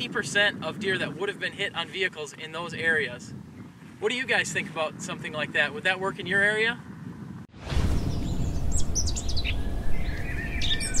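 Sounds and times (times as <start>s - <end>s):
low outdoor rumble: 5.9s - 11.0s
birds chirping: 7.8s - 11.0s.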